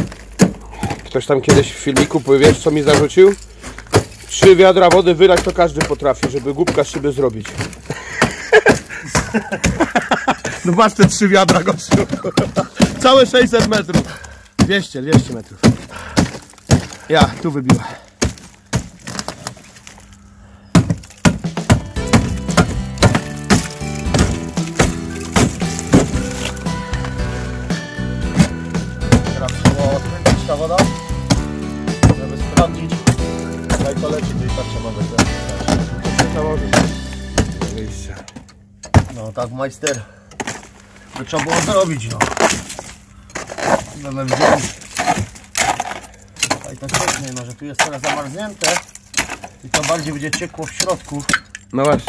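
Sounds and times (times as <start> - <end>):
crunching and breaking noises: 0.0 - 39.5, 40.3 - 52.0
crowbar knocking on wall: 28.4 - 34.2
crowbar scraping wet render: 41.2 - 51.2.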